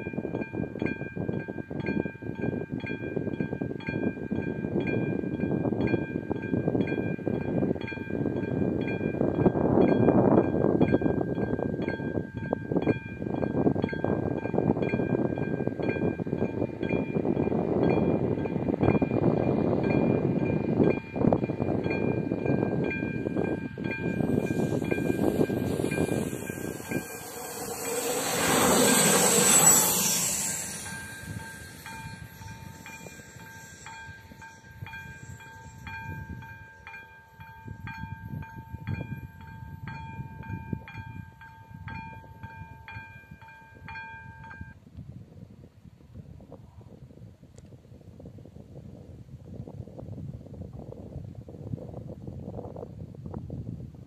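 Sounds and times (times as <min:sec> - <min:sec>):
train rumbling past: 0:00.0 - 0:44.7
crossing warning bell ringing: 0:00.0 - 0:44.8.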